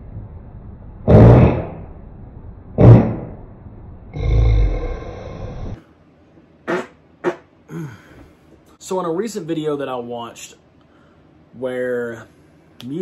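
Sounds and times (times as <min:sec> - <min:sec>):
loud sudden blasts: 0:01.0 - 0:01.9, 0:02.8 - 0:03.5.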